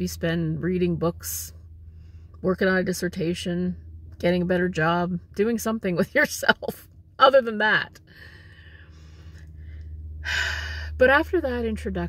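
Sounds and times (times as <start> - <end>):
woman speaking: 0.0 - 1.5, 2.4 - 8.0, 10.3 - 12.0
low hum: 0.0 - 12.0
woman breathing in: 8.1 - 11.0.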